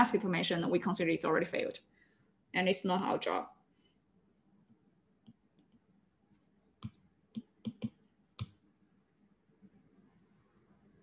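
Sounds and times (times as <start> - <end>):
stylus tapping on glass screen: 6.8 - 8.6.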